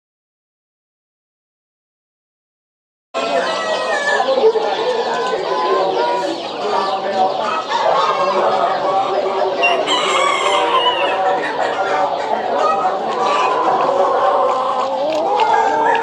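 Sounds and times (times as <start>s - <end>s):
chickens clucking: 3.2s - 16.0s
roosters crowing: 3.2s - 16.0s.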